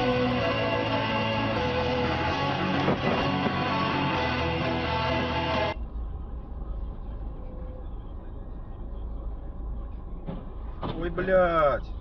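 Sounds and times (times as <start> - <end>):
rock music: 0.0 - 5.8
car cabin rumble: 2.7 - 4.2.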